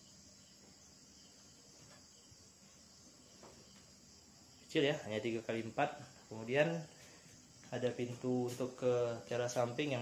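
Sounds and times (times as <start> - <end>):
insects chirring: 0.0 - 10.0
man talking: 4.7 - 7.0, 7.7 - 10.0.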